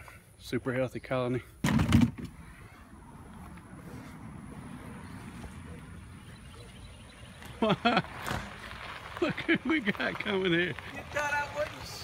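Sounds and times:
vehicle driving on gravel: 0:03.0 - 0:12.0.

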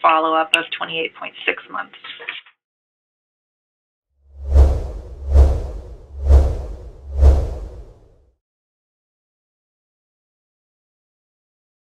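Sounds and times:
whooshes falling into low boom: 0:04.4 - 0:08.1.

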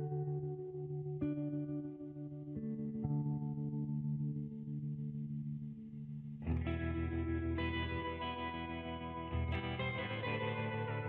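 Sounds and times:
effect-laden guitar chords: 0:00.0 - 0:11.0.

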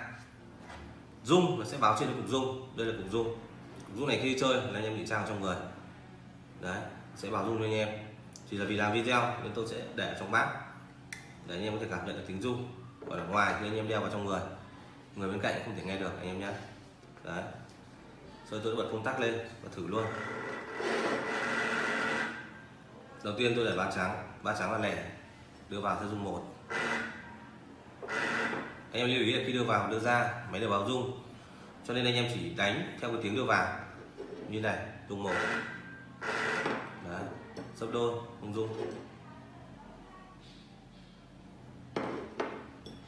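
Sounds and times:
vibration motor buzzing on ceramic: 0:20.0 - 0:22.5, 0:26.7 - 0:27.3, 0:28.0 - 0:28.8, 0:35.3 - 0:37.0.

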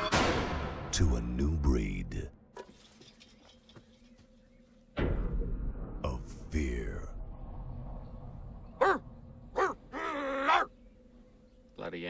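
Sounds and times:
faint low hum: 0:00.9 - 0:12.0.

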